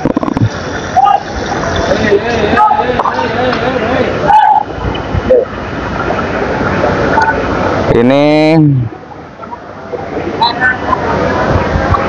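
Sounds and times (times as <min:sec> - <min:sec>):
distant voices: 0:00.0 - 0:07.9
market hubbub: 0:00.0 - 0:12.0.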